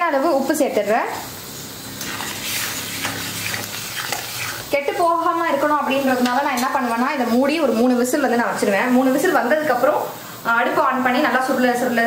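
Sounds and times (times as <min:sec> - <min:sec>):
food sizzling in a pot: 0:00.0 - 0:12.0
spatula stirring: 0:02.0 - 0:04.8.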